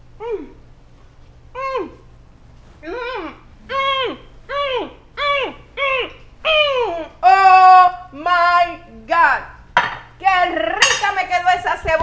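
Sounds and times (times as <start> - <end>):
woman's vocal sounds of enjoyment: 2.8 - 8.0.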